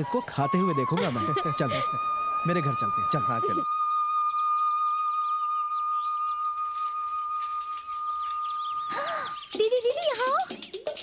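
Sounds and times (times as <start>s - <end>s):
high flute-like note: 1.0s - 8.9s.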